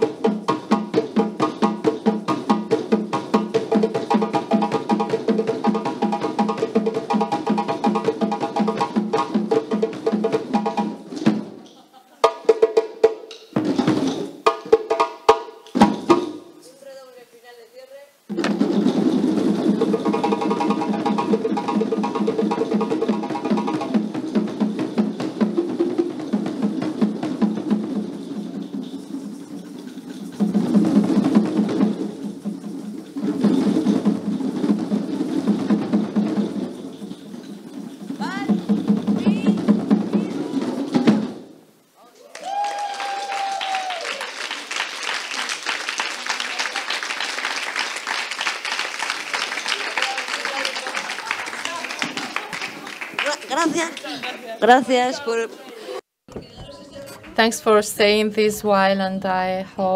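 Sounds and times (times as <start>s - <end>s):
hand drums played as a group: 0.0s - 16.5s, 18.3s - 41.6s.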